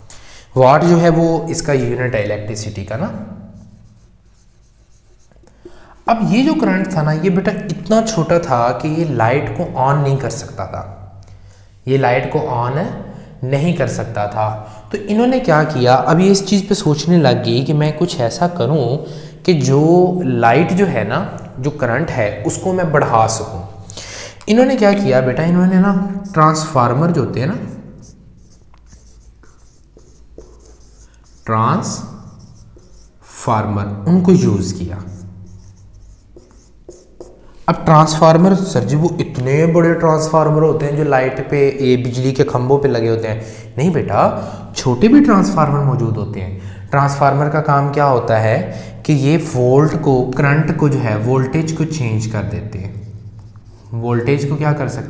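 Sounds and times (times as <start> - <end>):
marker writing on whiteboard: 2.6 - 8.2, 24.5 - 33.5, 34.2 - 40.3, 52.9 - 54.0
marker scratches: 3.4 - 6.7, 26.0 - 33.4, 34.4 - 38.7, 52.9 - 53.9.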